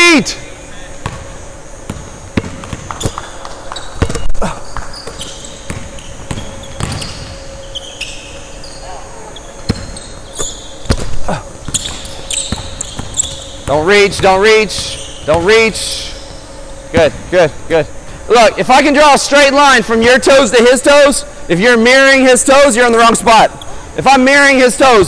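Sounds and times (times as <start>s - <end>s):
sneakers squeaking on hardwood: 1.0s - 15.6s
basketballs bouncing on hardwood: 1.9s - 7.3s, 9.7s - 15.6s.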